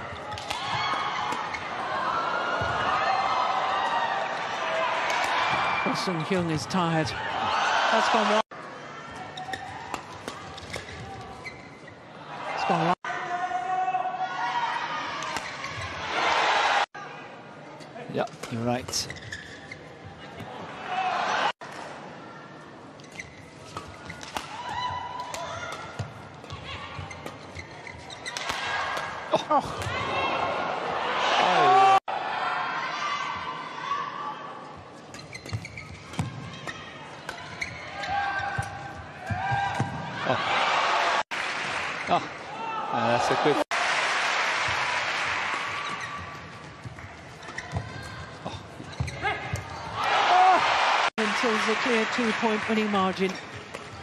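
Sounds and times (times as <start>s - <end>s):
shoes squeaking on court: 9.3s - 12.0s, 15.4s - 16.0s, 18.5s - 20.5s, 23.0s - 24.5s, 25.6s - 28.5s, 34.8s - 40.0s, 45.7s - 49.9s.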